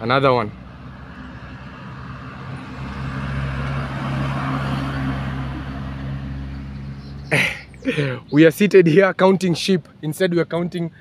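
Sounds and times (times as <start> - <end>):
truck driving past: 0.6 - 8.3.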